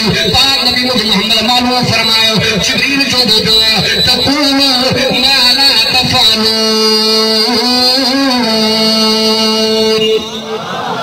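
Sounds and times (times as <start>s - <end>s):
man chanting a held note: 0.0s - 10.5s.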